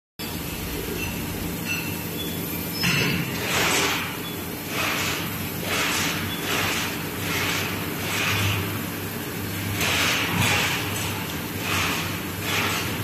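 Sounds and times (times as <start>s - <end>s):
machinery hum: 0.2s - 13.0s.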